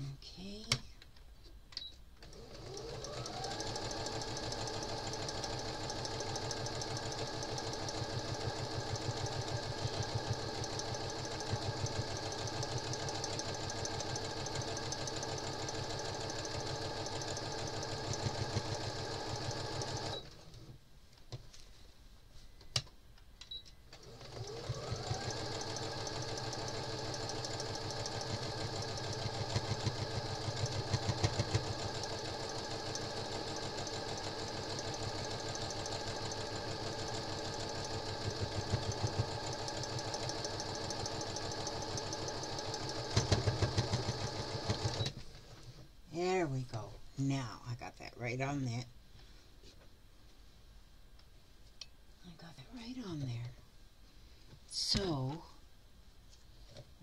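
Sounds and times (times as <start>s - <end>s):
sewing machine clicks: 2.2s - 20.3s, 23.9s - 45.2s
sewing machine stitching: 2.2s - 20.6s, 24.0s - 45.2s.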